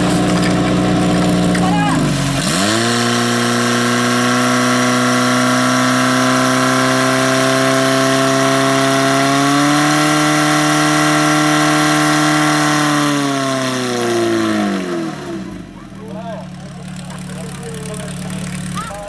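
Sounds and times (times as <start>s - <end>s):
pump engine running: 0.0s - 19.0s.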